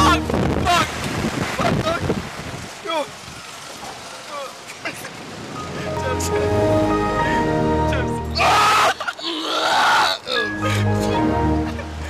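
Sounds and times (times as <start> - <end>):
wind rushing over microphone: 0.0 - 3.5.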